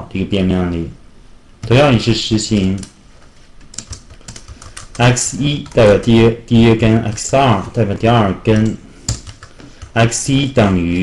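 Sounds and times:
computer keyboard typing: 0:02.5 - 0:06.2, 0:06.8 - 0:10.2.

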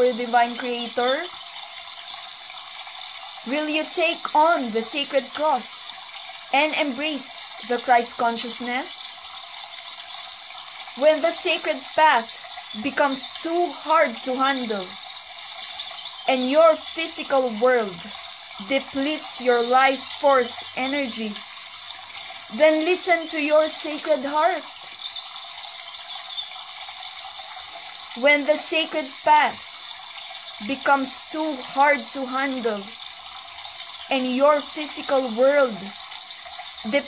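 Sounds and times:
faint high chirps: 0:00.0 - 0:37.0
steady high hiss: 0:00.0 - 0:37.0
water rushing: 0:00.0 - 0:37.0.

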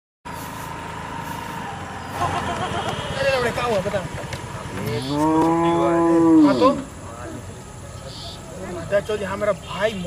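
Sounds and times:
motor scooter engine running: 0:02.1 - 0:05.8.

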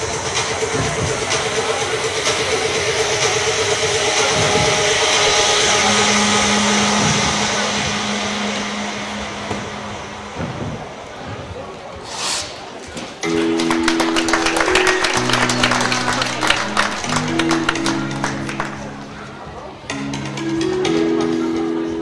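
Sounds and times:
music over loudspeakers: 0:00.0 - 0:11.2, 0:13.2 - 0:22.0
noisy hall: 0:00.0 - 0:22.0
long low held note: 0:04.4 - 0:11.3.

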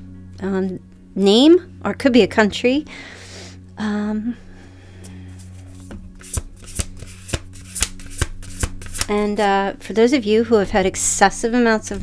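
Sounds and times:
cards being shuffled: 0:05.4 - 0:09.5.

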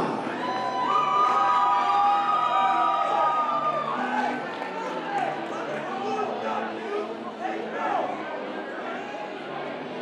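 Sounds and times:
crowd cheering and whooping: 0:00.1 - 0:05.2.

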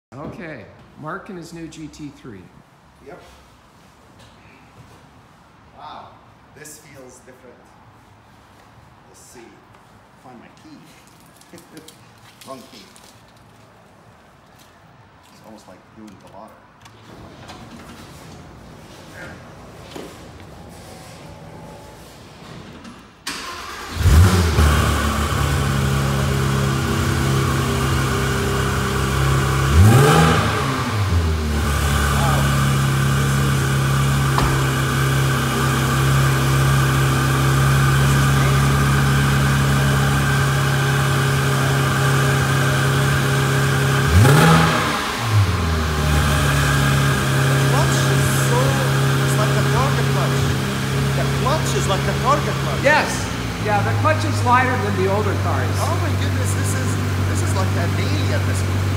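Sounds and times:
car engine starting and idling: 0:16.9 - 0:58.9
engine revving: 0:23.3 - 0:58.9.

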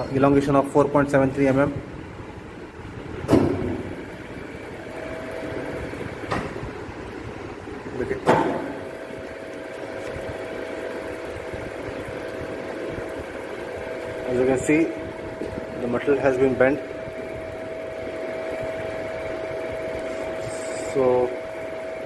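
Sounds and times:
hydraulic unit humming: 0:00.0 - 0:22.0.

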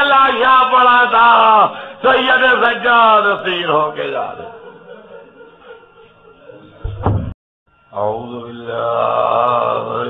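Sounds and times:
man chanting: 0:00.0 - 0:04.6, 0:07.9 - 0:10.0.

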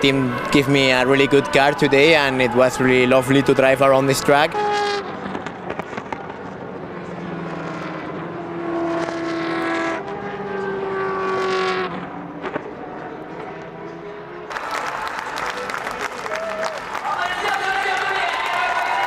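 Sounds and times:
crowd noise: 0:00.0 - 0:07.5, 0:12.6 - 0:19.0
race car engines passing: 0:00.0 - 0:17.6
applause: 0:14.5 - 0:19.0.

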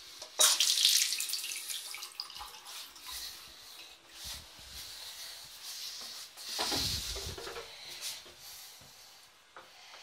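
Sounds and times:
water gushing into a washbasin: 0:00.4 - 0:04.0.

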